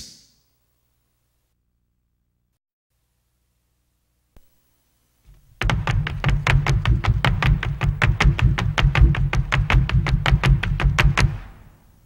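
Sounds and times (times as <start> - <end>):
hard shoes striking stage floor: 5.2 - 11.9.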